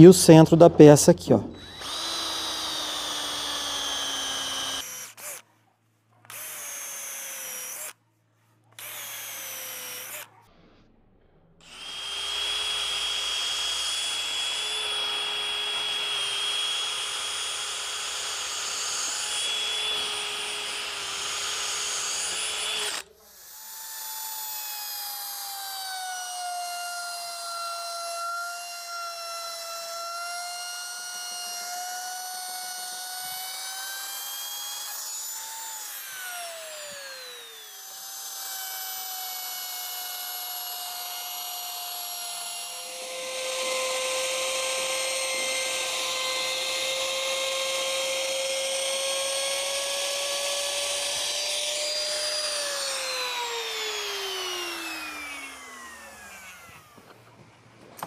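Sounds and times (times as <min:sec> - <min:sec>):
router bit cutting wood: 0:00.0 - 0:05.4, 0:06.3 - 0:08.0, 0:08.8 - 0:10.3, 0:11.6 - 0:57.3
router motor whine: 0:01.4 - 0:05.4, 0:06.3 - 0:08.0, 0:08.8 - 0:10.3, 0:11.6 - 0:57.4.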